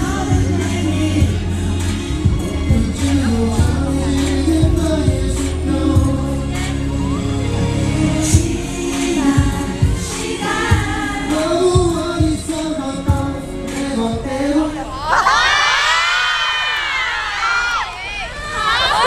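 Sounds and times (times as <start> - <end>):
fans screaming and cheering: 0.0 - 12.5, 14.7 - 19.0
wavering vocal line: 0.0 - 15.5.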